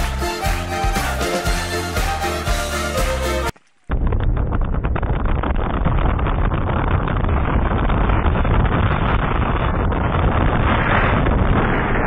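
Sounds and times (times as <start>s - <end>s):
sharp crackles: 3.5s - 12.0s
wind buffeting microphone: 3.9s - 12.0s.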